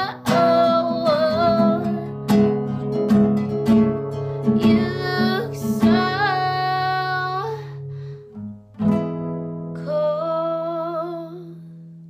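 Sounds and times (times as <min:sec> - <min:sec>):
woman singing with vibrato: 0:00.0 - 0:02.2, 0:04.5 - 0:07.8, 0:09.8 - 0:11.6
acoustic guitar chord ringing: 0:00.0 - 0:12.0.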